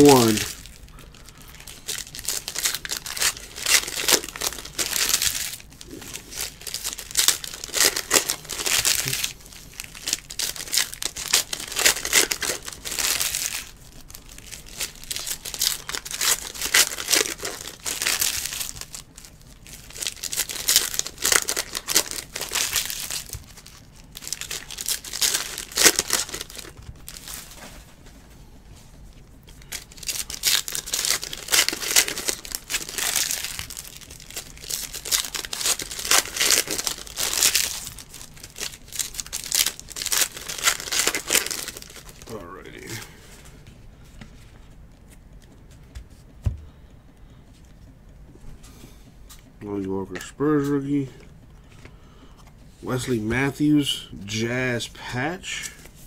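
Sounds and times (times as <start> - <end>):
foil wrappers crinkling and tearing: 0.0 - 28.0, 29.5 - 45.4, 52.9 - 56.0.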